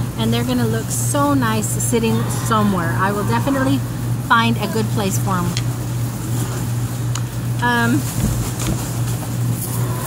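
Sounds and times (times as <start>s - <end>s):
air conditioning unit humming: 0.0s - 10.0s.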